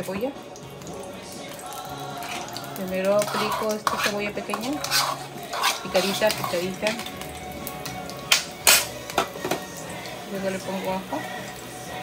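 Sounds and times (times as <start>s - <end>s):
kitchen dishes clinking: 8.3s - 9.7s.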